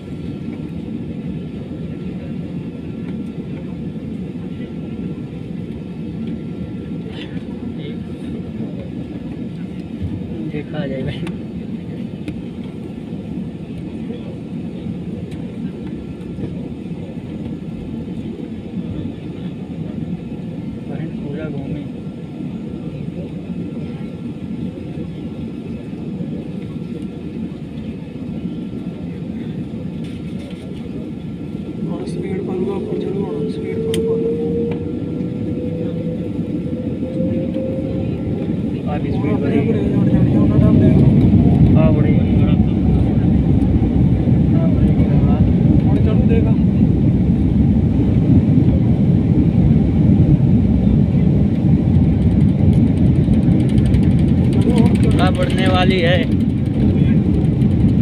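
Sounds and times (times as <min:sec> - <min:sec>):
jet engine and airflow rumble: 0:00.0 - 0:58.0
engine whine rising in pitch: 0:31.5 - 0:46.3.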